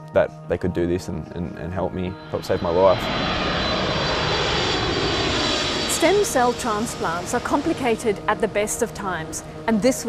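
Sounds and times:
jet airliner flying overhead: 0.8 - 10.0.

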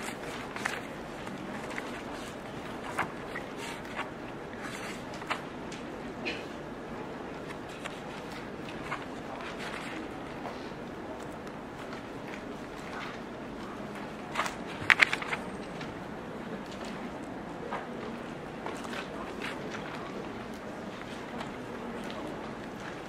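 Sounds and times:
room noise: 0.0 - 23.0.

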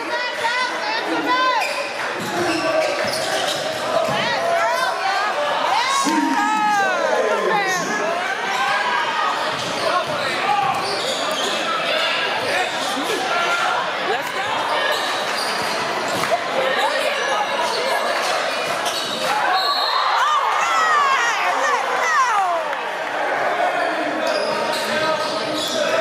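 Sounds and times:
voices of players and crowd: 0.0 - 26.0
sneaker squeaks: 1.5 - 4.9, 9.4 - 11.9, 14.6 - 17.0, 17.6 - 20.0, 24.2 - 26.0.

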